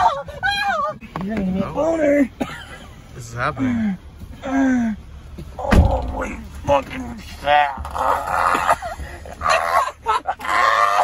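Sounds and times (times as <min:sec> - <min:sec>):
people shouting and yelling: 0:04.4 - 0:11.0.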